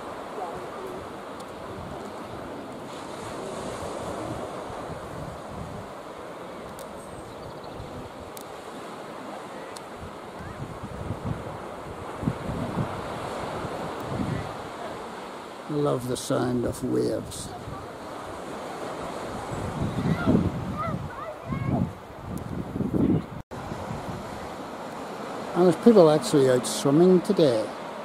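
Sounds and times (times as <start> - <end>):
wind buffeting microphone: 0.0 - 15.4, 17.0 - 25.5
sea waves washing onto beach: 0.0 - 28.0.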